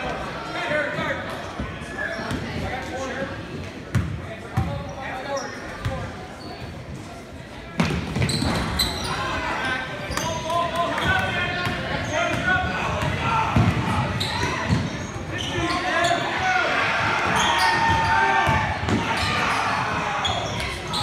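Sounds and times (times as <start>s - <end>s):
voices of players and spectators: 0.0s - 21.0s.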